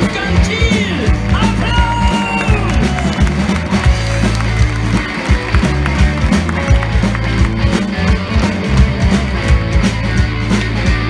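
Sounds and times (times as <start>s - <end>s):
drum kit beat: 0.0s - 11.0s
electric bass: 0.0s - 11.0s
electric guitar: 0.0s - 11.0s.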